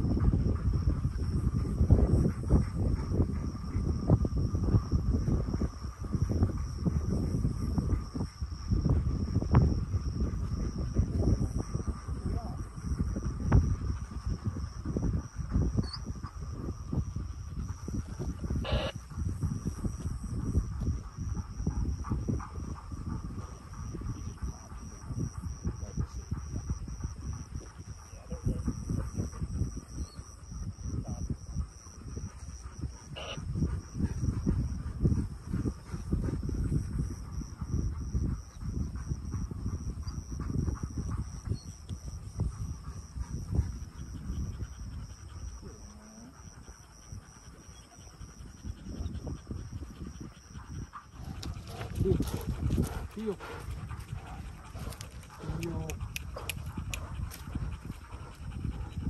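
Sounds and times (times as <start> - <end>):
wind buffeting microphone: 0.0 - 59.0
steady high-pitched whine: 16.9 - 21.3.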